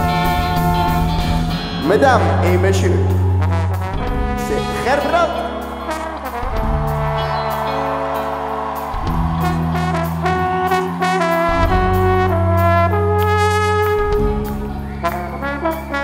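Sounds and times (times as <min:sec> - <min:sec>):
bass guitar: 0:00.0 - 0:16.0
drums: 0:00.0 - 0:16.0
trombone and horns: 0:00.0 - 0:16.0.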